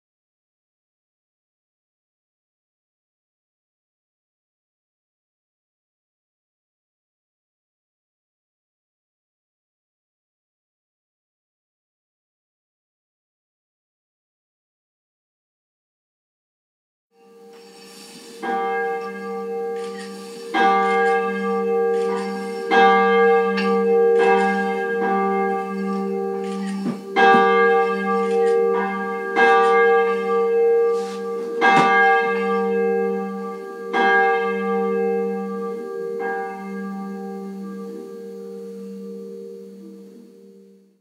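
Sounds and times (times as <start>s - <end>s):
church bell tolling: 17.2s - 41.0s.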